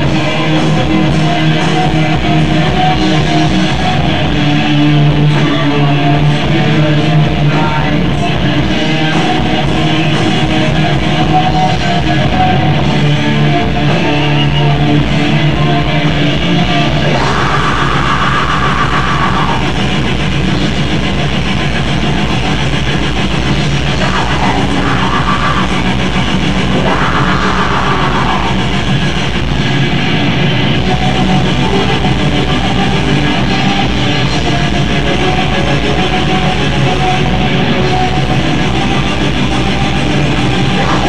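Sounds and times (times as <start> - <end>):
distorted electric guitar: 0.0 - 41.0
fast drumming: 0.0 - 41.0.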